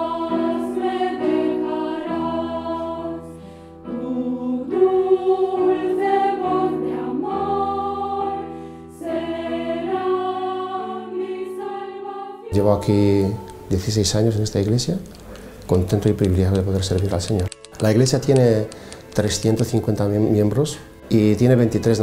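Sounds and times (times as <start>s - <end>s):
mixed choir singing held chords: 0.0s - 16.1s
man speaking: 12.5s - 15.1s, 15.7s - 22.0s.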